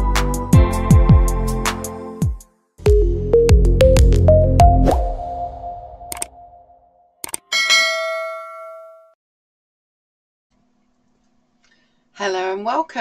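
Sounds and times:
electronic music with bass hits: 0:00.0 - 0:06.8.

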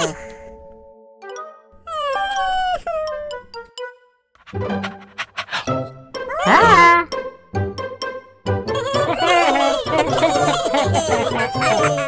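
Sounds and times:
background music with held notes: 0:00.0 - 0:12.0
cartoon character high-pitched vocal: 0:06.3 - 0:07.1.

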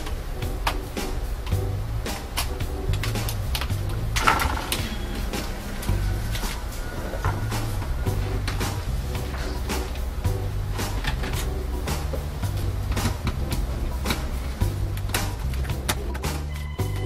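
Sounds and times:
music with bass line and beat: 0:00.0 - 0:17.0.

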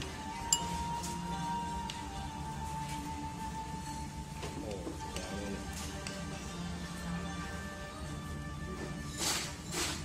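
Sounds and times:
background music: 0:00.0 - 0:10.0
cutlery clinking on tableware: 0:00.5 - 0:01.1.

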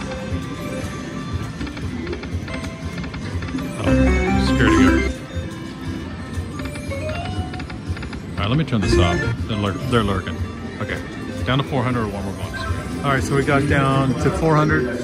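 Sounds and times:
slot machine reel-spin music: 0:00.0 - 0:15.0
slot machine chimes: 0:03.6 - 0:05.7, 0:08.8 - 0:10.1
slot machine win jingle: 0:03.6 - 0:05.7, 0:08.8 - 0:10.1.

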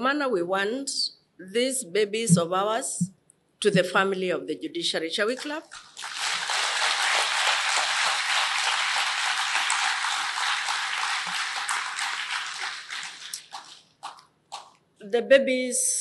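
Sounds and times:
audience applauding: 0:05.8 - 0:14.2.

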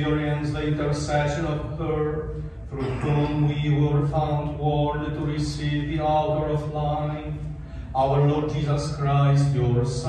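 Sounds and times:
man intoning prayer: 0:00.0 - 0:10.0.

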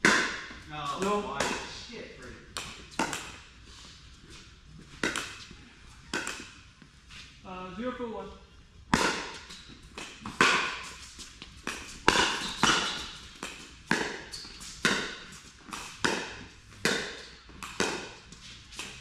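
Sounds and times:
ball bouncing on court: 0:00.0 - 0:01.8, 0:02.5 - 0:03.4, 0:05.0 - 0:05.5, 0:06.1 - 0:06.5, 0:08.9 - 0:19.0
paddles striking ball: 0:00.0 - 0:01.8, 0:11.6 - 0:18.1.

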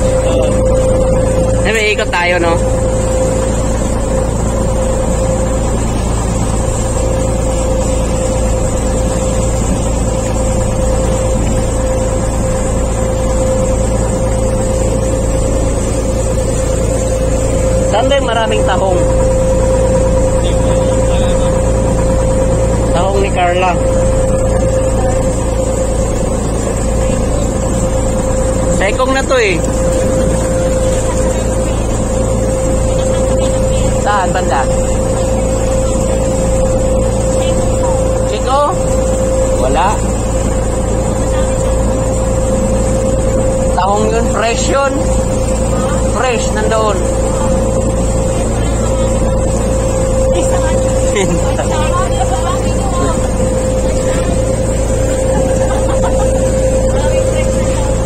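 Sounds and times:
boat engine droning: 0:00.0 - 0:58.0.

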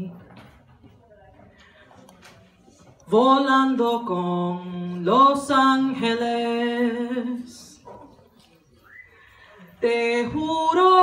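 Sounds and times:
woman singing unaccompanied: 0:03.1 - 0:07.8, 0:09.8 - 0:11.0.

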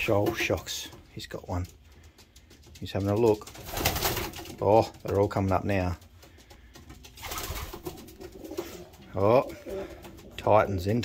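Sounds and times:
pigeons cooing: 0:06.4 - 0:11.0.

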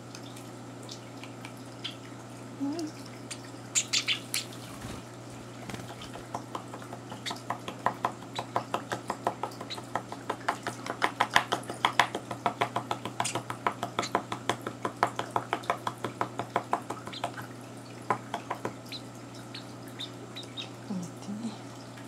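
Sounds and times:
bird chick cheeping: 0:18.9 - 0:20.8.

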